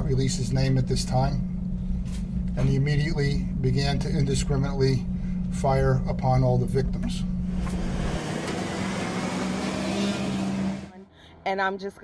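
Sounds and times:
truck engine drone: 0.0 - 11.4
road noise: 7.4 - 11.1.

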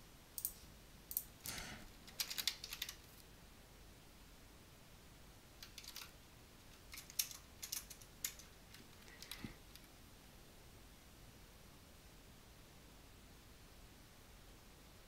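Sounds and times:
keyboard typing: 1.1 - 3.0, 5.6 - 6.1, 6.7 - 9.9.

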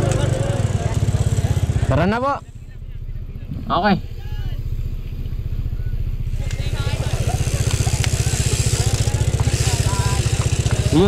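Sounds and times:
faint voices: 0.0 - 11.0
motorcycle engine running: 0.0 - 11.0.

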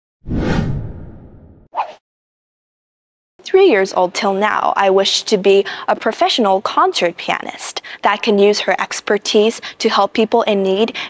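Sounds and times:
whoosh sound effect: 0.2 - 1.9
short sound effect: 0.3 - 1.7.

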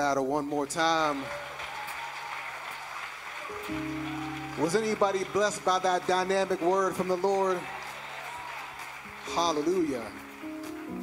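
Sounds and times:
congregation applauding: 0.0 - 11.0
sustained keyboard chords: 3.5 - 8.2, 8.8 - 11.0.

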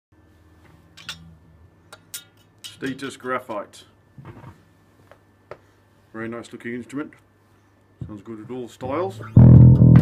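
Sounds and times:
electric bass low notes: 9.2 - 10.0.

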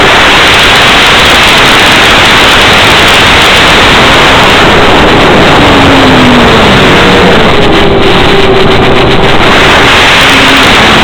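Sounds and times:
model plane motor hum: 0.0 - 11.0
radio static hiss: 0.0 - 11.0.

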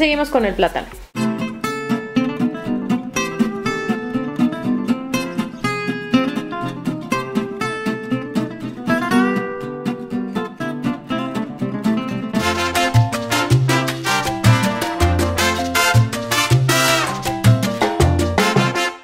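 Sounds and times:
acoustic guitar plucked and strummed: 1.2 - 19.0.

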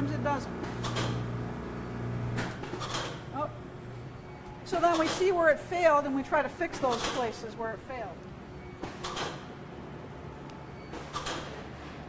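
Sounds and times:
water purifier humming: 0.0 - 6.0.

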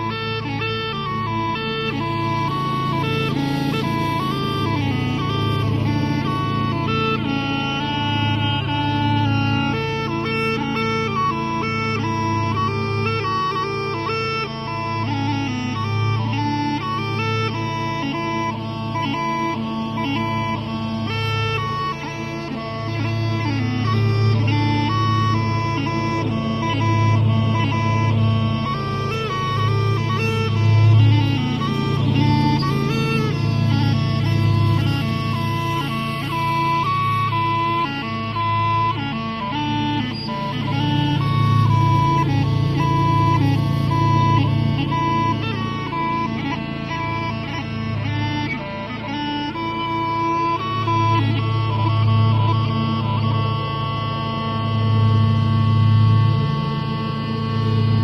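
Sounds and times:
bagpipes playing a tune: 0.0 - 58.0.

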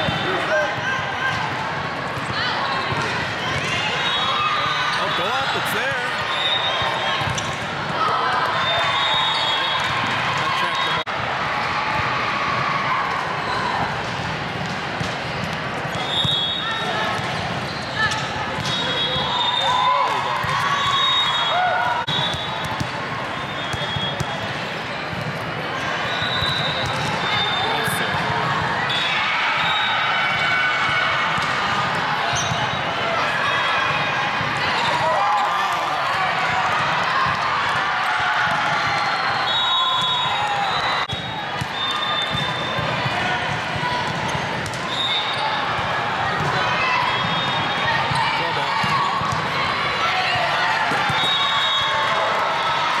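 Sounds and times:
court shoes squeaking: 0.0 - 11.0, 13.4 - 30.4, 31.4 - 33.0, 38.8 - 49.4, 50.9 - 52.0
voices calling and talking: 0.0 - 11.2, 15.4 - 37.8
volleyball hits: 26.3 - 32.8.

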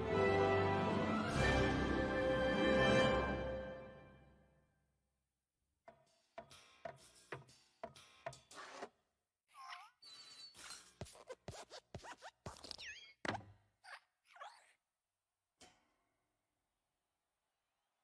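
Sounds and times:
creaky squeaks: 9.5 - 14.8.

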